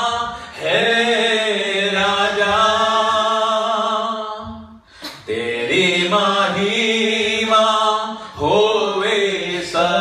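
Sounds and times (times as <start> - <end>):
man singing a worship song: 0.0 - 10.0.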